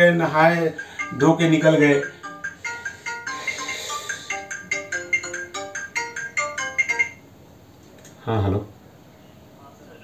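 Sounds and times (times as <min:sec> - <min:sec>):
phone ringtone melody: 0:00.4 - 0:07.3.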